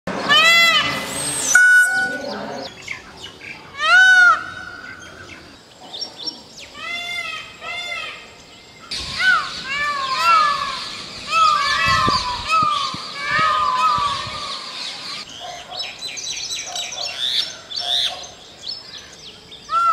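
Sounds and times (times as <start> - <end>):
peacock calling: 0.2 - 2.9, 3.6 - 5.6, 19.7 - 19.9.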